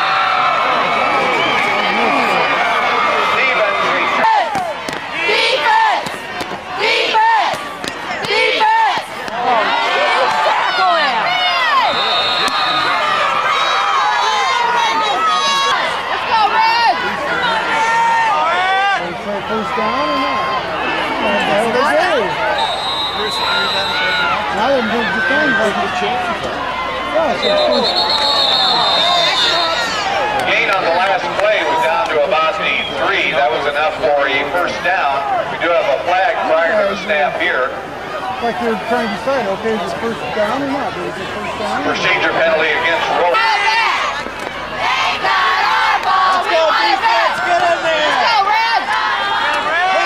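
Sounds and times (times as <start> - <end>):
crowd cheering: 0.0 - 50.0
spectators yelling and talking: 0.0 - 50.0.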